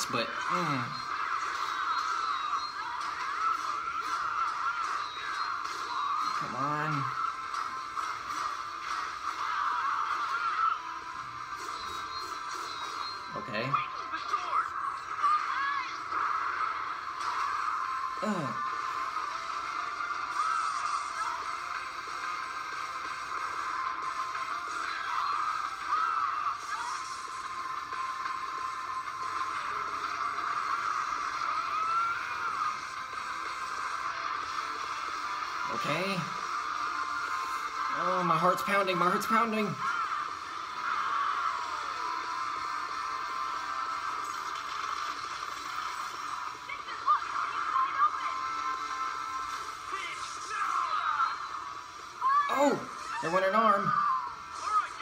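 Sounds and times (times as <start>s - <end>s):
music: 0.0s - 55.0s.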